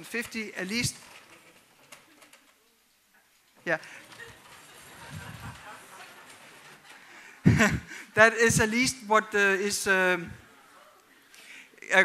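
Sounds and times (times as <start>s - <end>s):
faint low voice: 4.9s - 6.0s.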